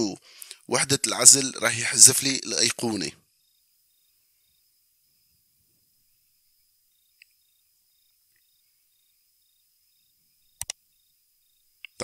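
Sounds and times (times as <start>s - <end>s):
faint high electronic whine: 0.0s - 12.0s
computer mouse clicks: 10.6s - 10.8s.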